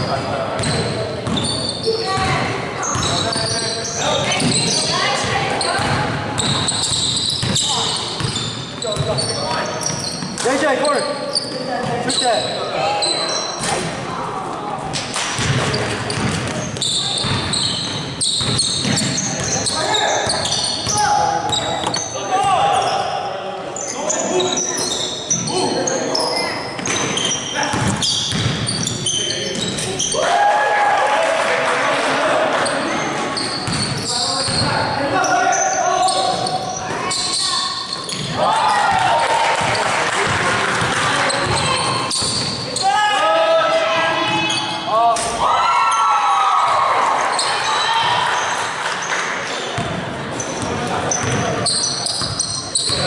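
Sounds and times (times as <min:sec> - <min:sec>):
sneaker squeaks: 0:00.0 - 0:30.2, 0:32.6 - 0:43.3, 0:44.0 - 0:53.0.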